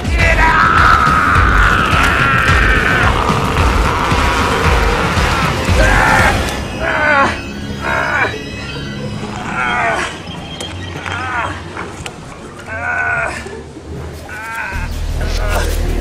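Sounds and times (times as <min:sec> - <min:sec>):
low background music: 0:00.0 - 0:16.0.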